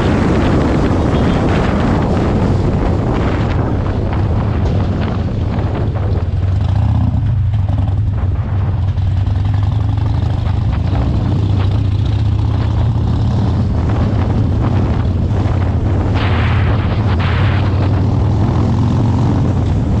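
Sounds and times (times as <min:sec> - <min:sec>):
motorcycle engine droning: 0:00.0 - 0:20.0.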